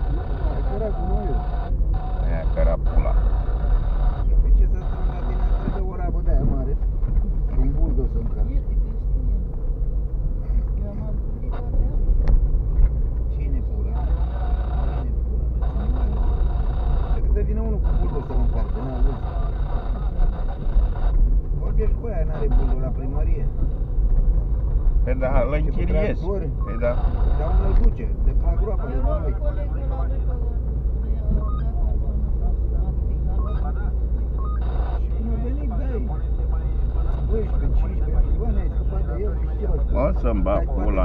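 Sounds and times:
indistinct voices talking: 0.0s - 9.8s, 10.4s - 41.0s
car cabin rumble on rough road: 0.0s - 41.0s.

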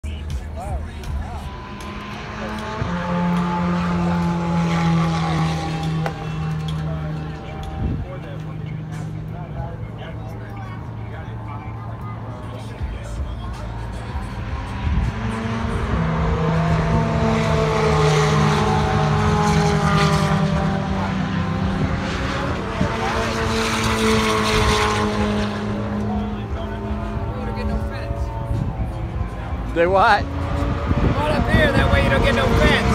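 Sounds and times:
race car engines droning: 0.0s - 32.9s.

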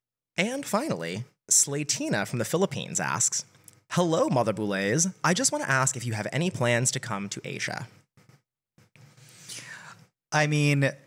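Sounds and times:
person breathing softly: 9.2s - 10.1s.

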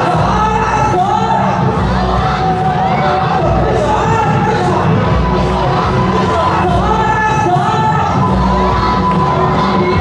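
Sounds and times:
dance music over sound system: 0.0s - 10.0s
group of dancers shouting: 0.0s - 10.0s.

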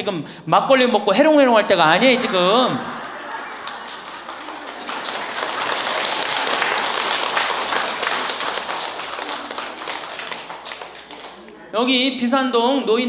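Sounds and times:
audience applauding: 1.9s - 11.6s.

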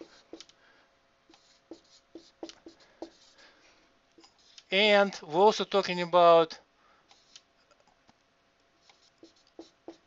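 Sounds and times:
marker writing on whiteboard: 0.0s - 0.5s, 1.3s - 3.4s, 4.2s - 4.7s, 7.2s - 7.4s, 8.8s - 10.0s.

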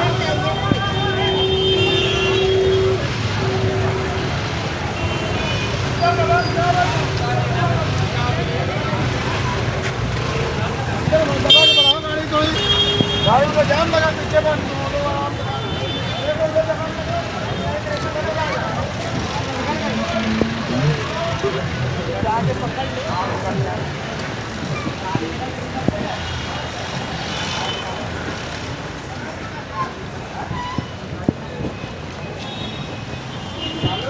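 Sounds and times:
people's voices: 0.0s - 34.0s
vehicle engines running: 0.0s - 34.0s
vehicle horns honking: 0.2s - 4.3s, 4.9s - 6.0s, 11.5s - 13.5s, 32.3s - 34.0s.

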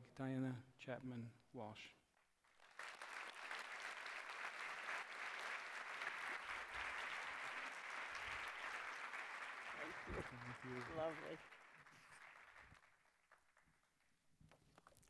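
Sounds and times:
audience applauding: 2.5s - 13.9s.

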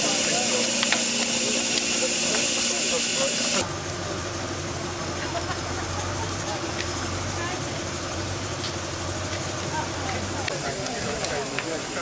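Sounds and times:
steam hissing: 0.0s - 3.6s, 7.8s - 12.0s.

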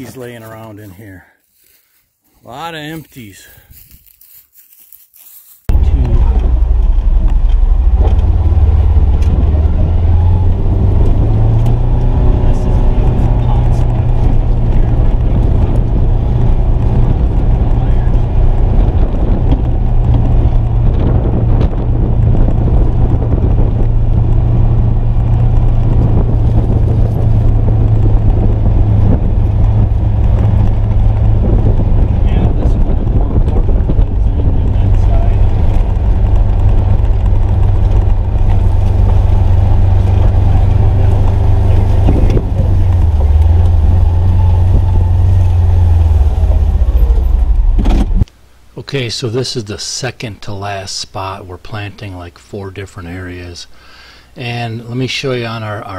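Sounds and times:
utility vehicle engine running: 5.7s - 48.3s.

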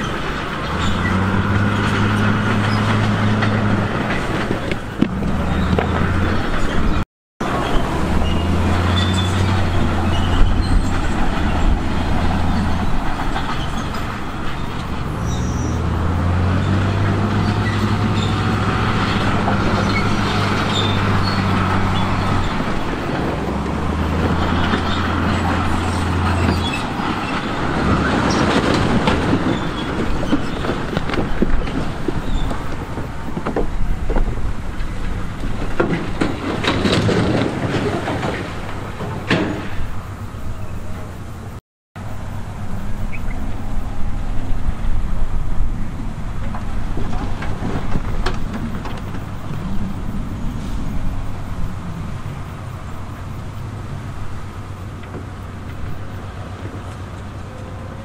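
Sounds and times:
heavy diesel engines droning: 0.0s - 58.0s.

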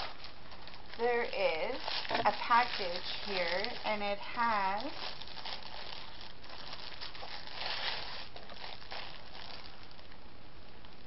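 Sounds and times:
plastic packaging crinkling: 0.0s - 10.2s.

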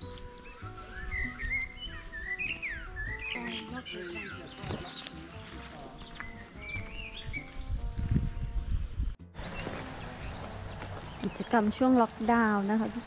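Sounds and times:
bird chirping: 0.0s - 8.1s, 9.4s - 13.0s.

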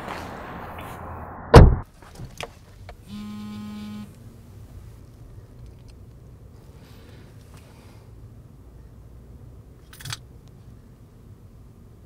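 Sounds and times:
mobile phone buzzing: 3.1s - 4.2s.

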